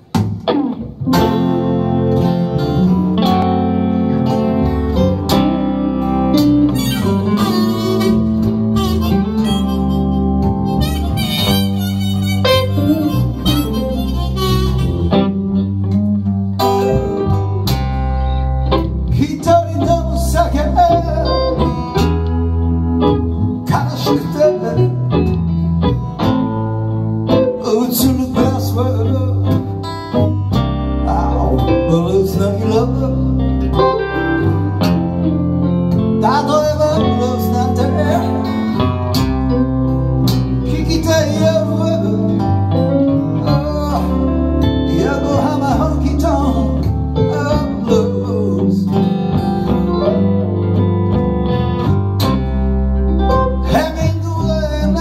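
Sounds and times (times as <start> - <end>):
acoustic guitar: 0.0 - 55.0
electric bass: 0.0 - 55.0
electric guitar: 0.0 - 55.0
lead melody: 0.0 - 55.0.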